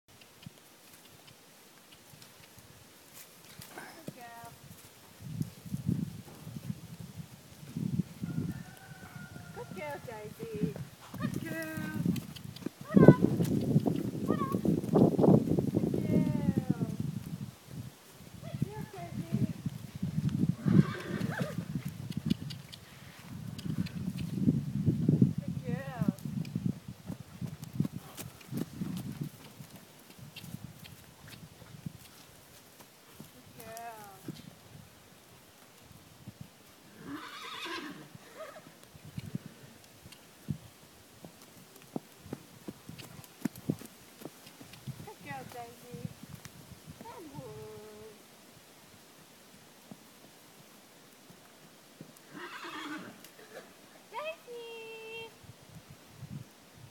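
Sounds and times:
horse hooves on dirt: 0.1s - 36.8s, 38.4s - 48.1s, 49.5s - 54.5s
hoofbeats on soft ground: 0.1s - 56.9s
horse whinny: 20.6s - 21.7s, 37.0s - 38.7s, 52.3s - 53.6s.

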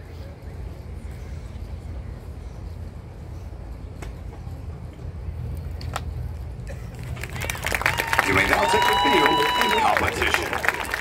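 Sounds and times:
stadium low rumble: 0.0s - 11.0s.

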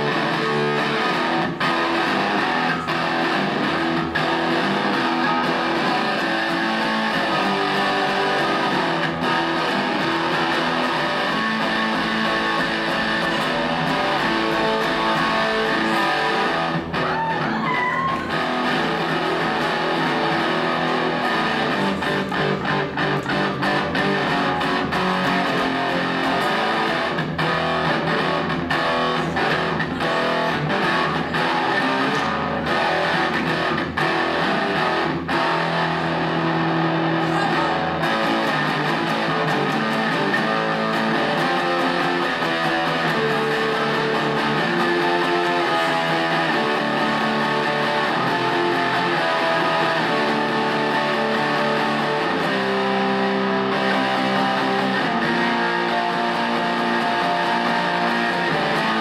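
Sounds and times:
electric guitar playing: 0.0s - 59.0s.

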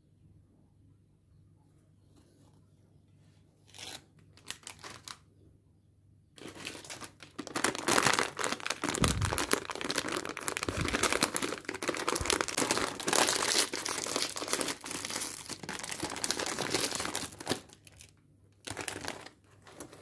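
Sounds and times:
plastic snack bag crinkling: 3.7s - 5.2s, 6.4s - 20.0s.

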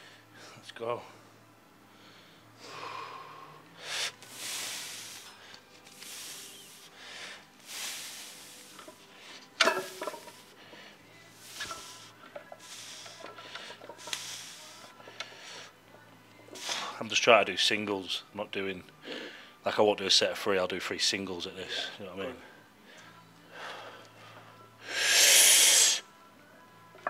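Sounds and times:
man breathing hard: 1.9s - 9.5s, 10.5s - 15.8s, 19.0s - 19.6s.

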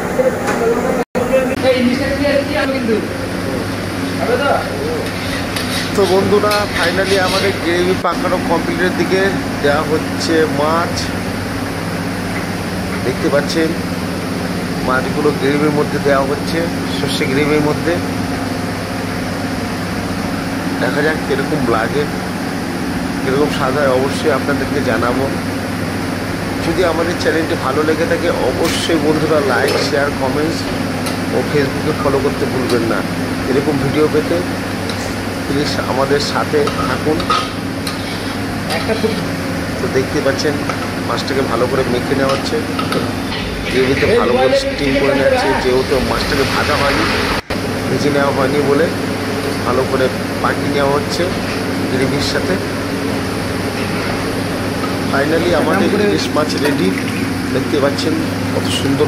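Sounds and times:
low electrical hum: 0.0s - 59.0s
spatula scraping in a wok: 5.0s - 7.6s, 37.4s - 39.2s.

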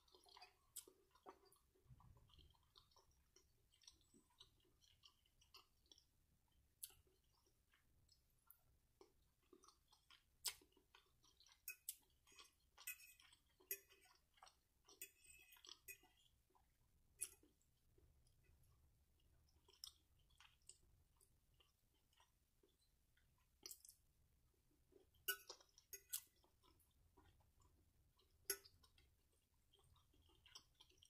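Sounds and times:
wet chewing clicks and smacks: 0.0s - 18.4s, 19.2s - 24.1s, 24.9s - 31.0s.

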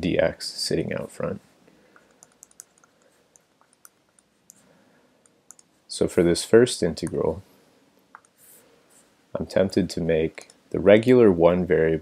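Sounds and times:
stylus tapping on tablet screen: 1.9s - 4.6s, 8.1s - 8.4s.

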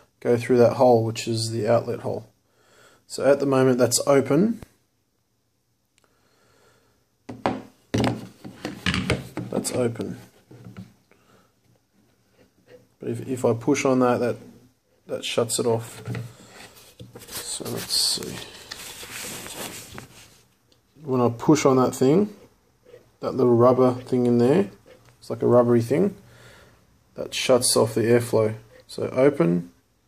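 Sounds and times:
sharp knocks on plastic: 7.3s - 9.5s.

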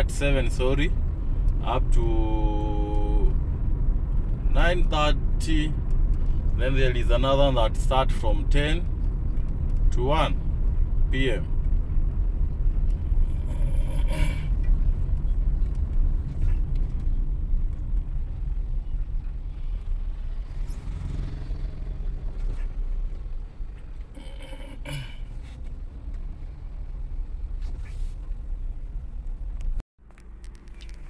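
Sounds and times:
car engine and tyres rumbling: 0.0s - 31.0s.

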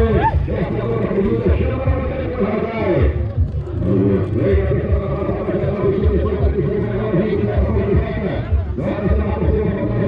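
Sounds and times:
background chatter: 0.0s - 10.0s
man talking: 0.0s - 10.0s.

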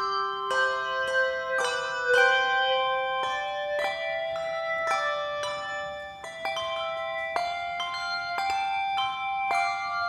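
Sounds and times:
handbell choir playing: 0.0s - 10.0s.

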